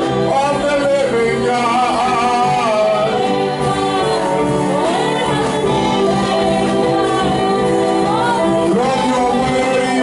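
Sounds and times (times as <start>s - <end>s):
held musical accompaniment: 0.0s - 10.0s
voices singing: 0.1s - 10.0s.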